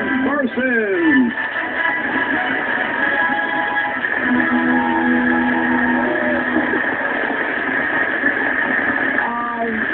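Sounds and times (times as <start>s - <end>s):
show music: 0.0s - 8.8s
studio audience applauding: 0.0s - 9.9s.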